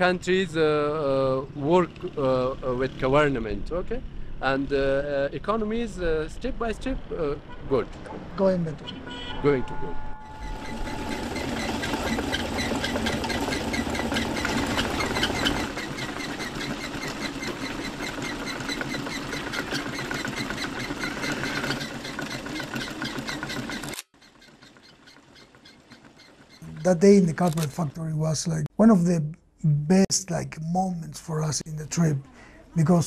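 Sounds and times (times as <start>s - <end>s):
workshop machinery clattering: 10.3s - 27.0s.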